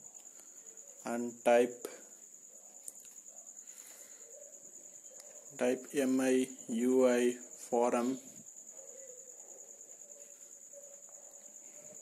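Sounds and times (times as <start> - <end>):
high-pitched insect trill: 0.0 - 12.0.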